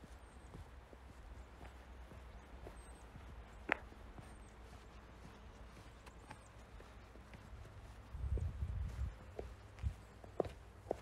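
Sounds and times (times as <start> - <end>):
footsteps on packed snow: 0.0 - 11.0.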